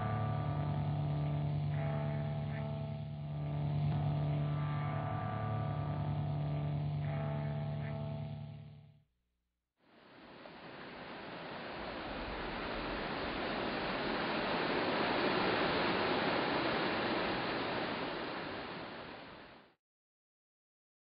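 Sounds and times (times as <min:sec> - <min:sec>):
smooth rushing noise: 0:10.0 - 0:19.6.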